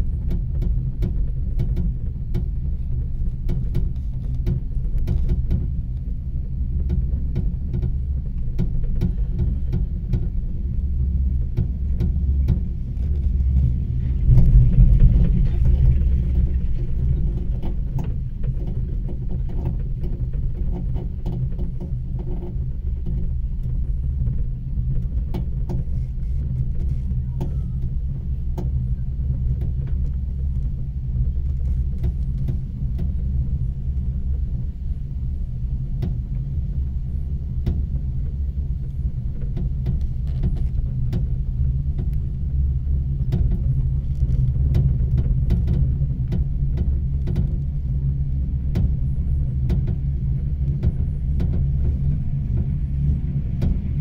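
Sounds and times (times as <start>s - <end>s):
cable car rumbling: 0.0s - 54.0s
light clicks and creaks: 11.6s - 14.7s, 25.3s - 28.0s, 28.6s - 33.2s, 38.8s - 41.3s, 43.3s - 48.9s.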